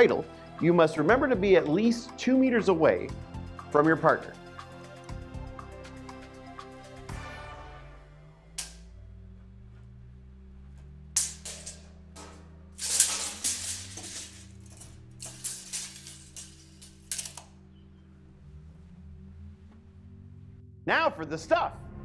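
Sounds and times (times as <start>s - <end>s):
background music low tones: 0.0s - 22.0s
tape measure rattling and scraping: 11.2s - 17.6s.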